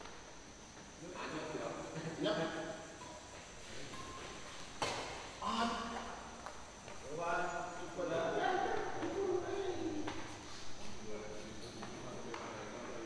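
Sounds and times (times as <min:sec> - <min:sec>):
men calling out and talking: 0:01.0 - 0:13.0.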